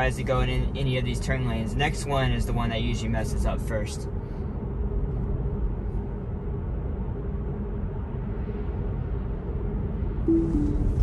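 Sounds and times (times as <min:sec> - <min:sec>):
tyre and road noise in car cabin: 0:00.0 - 0:11.0
two-note descending chime: 0:10.3 - 0:11.0.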